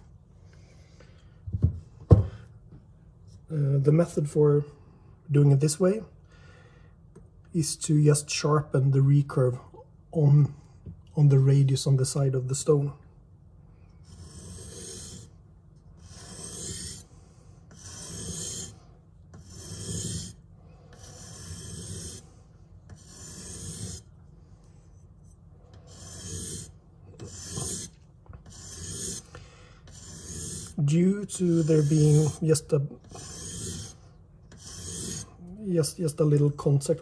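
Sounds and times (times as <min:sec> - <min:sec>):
knife rasping on whetstone: 0:14.0 - 0:15.4, 0:16.0 - 0:24.2, 0:25.7 - 0:35.4.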